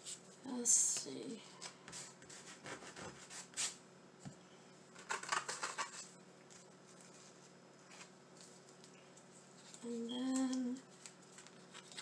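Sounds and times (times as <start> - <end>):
vinyl pieces rustling: 5.0 - 12.0.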